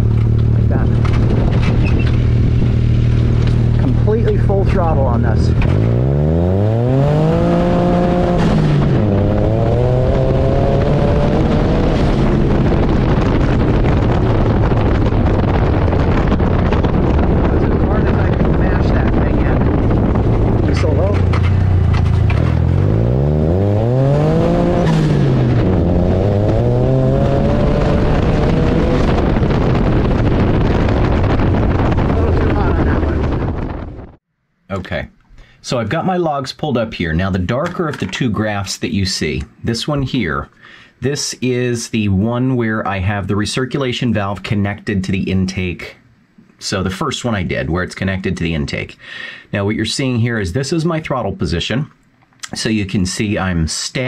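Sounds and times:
turbocharged engine revving: 0:00.0 - 0:33.8.

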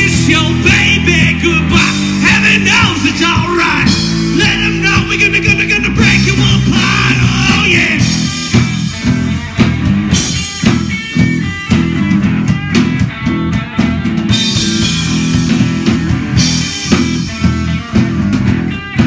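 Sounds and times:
drum kit beat: 0:00.0 - 0:19.0
electric guitar: 0:00.0 - 0:19.0.

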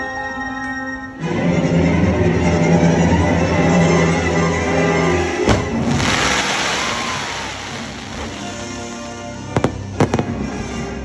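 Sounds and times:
fireworks launching with hissing rush: 0:05.4 - 0:10.8.

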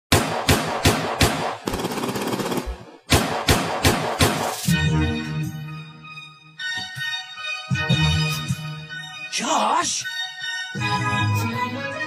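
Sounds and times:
automatic gunfire burst: 0:00.1 - 0:04.5
single gunshots: 0:00.1 - 0:04.7.

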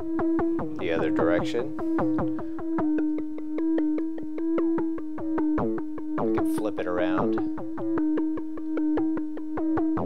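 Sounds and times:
synthesizer short notes: 0:00.0 - 0:09.6
synthesizer held tone: 0:00.0 - 0:10.0.

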